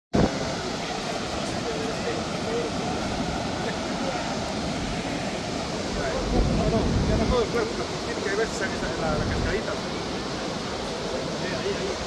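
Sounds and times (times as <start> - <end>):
waterfall roaring: 0.2 - 12.0.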